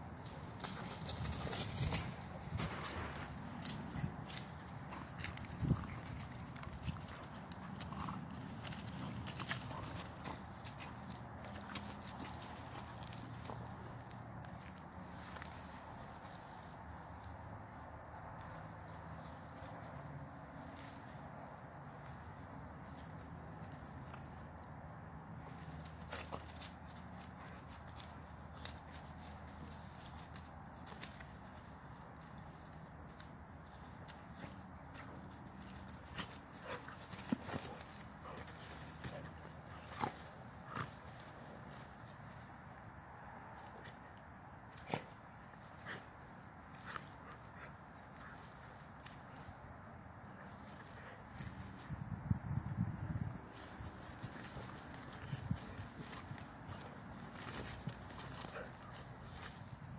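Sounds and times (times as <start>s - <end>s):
dogs scuffling on grass: 0.0s - 59.9s
dog noises: 34.3s - 41.7s, 54.2s - 59.8s.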